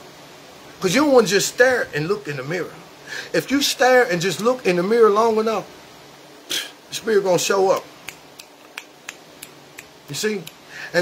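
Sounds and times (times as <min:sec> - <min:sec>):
finger snapping: 0:07.8 - 0:10.6.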